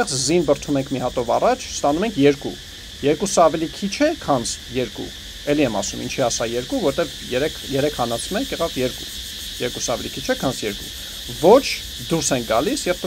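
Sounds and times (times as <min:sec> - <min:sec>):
man speaking: 0:00.0 - 0:09.0, 0:09.6 - 0:13.0
crickets chirping: 0:00.0 - 0:13.0.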